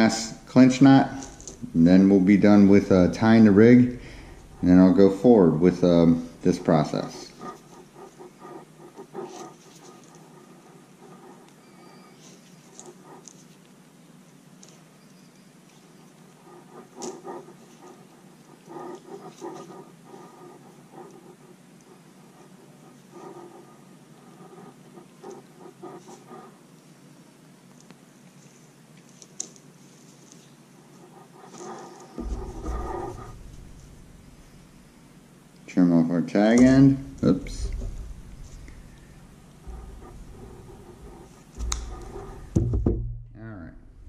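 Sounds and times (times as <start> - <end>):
fishing line rubbing and rustling: 31.5 - 34.8
low bump: 32.2 - 35.2, 36.6 - 44.0.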